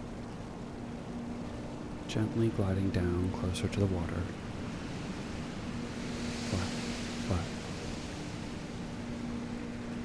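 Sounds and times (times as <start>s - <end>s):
low steady hum: 0.0s - 10.0s
steady rushing noise: 0.0s - 10.0s
person speaking softly: 6.4s - 7.6s.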